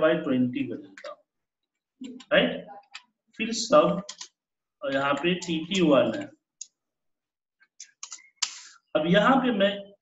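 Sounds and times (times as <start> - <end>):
computer keyboard clicks: 4.0 - 6.7.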